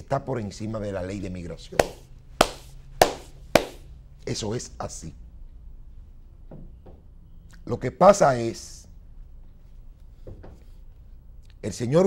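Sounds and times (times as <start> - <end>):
sharp hand smacks: 1.8 - 3.8.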